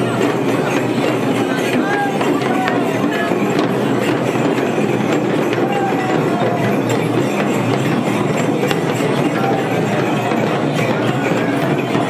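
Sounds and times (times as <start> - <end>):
crowd chatter: 0.0 - 12.0
frame drums beaten: 0.0 - 12.0.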